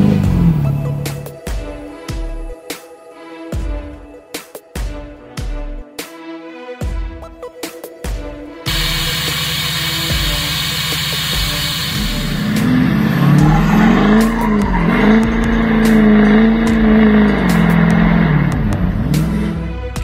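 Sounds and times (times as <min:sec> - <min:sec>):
diesel truck engine revving: 0:00.0 - 0:01.8, 0:08.7 - 0:19.9
background music: 0:00.0 - 0:20.0.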